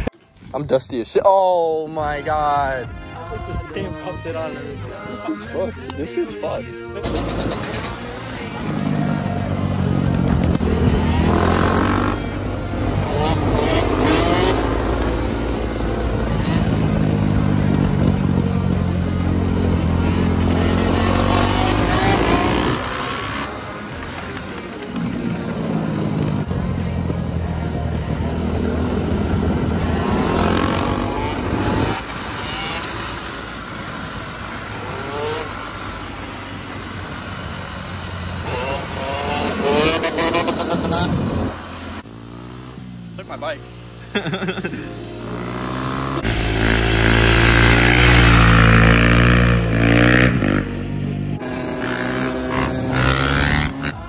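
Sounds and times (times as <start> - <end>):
dirt bike engine revving: 7.0 - 26.6, 27.5 - 54.0.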